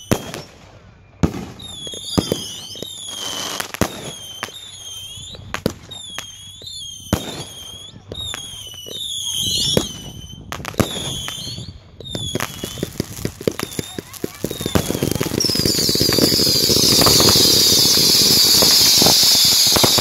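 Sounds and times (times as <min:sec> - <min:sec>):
firework shells bursting: 0:09.6 - 0:20.0
falling high whistles: 0:14.5 - 0:20.0.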